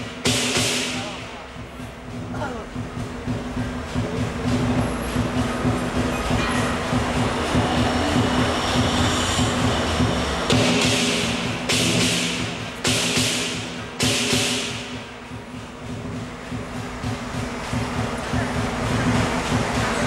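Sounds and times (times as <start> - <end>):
cymbal crashes: 0.0 - 20.0
lion drum beating fast rhythm: 0.0 - 20.0.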